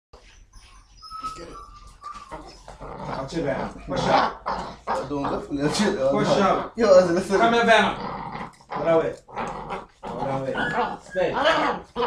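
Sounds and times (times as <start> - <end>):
puppy whining: 0.2 - 12.0.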